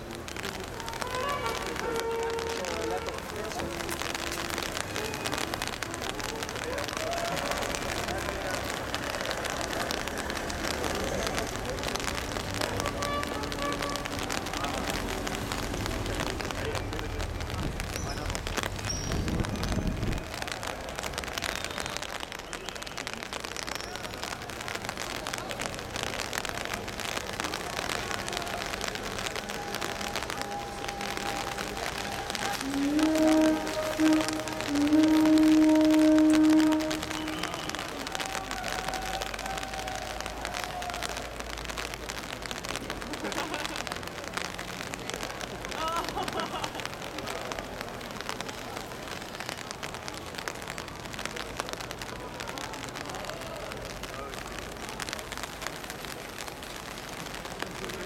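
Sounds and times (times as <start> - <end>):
rain pattering on an umbrella: 0.0 - 58.0
loud low tone: 30.2 - 38.0.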